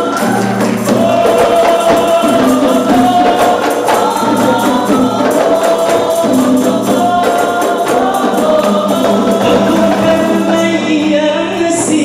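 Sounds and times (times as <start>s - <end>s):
frame drums with jingles: 0.0s - 12.0s
group singing: 0.0s - 12.0s.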